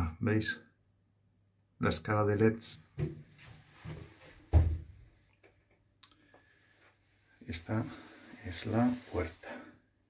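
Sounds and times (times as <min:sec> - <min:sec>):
dull heavy thump: 0:03.9 - 0:04.9.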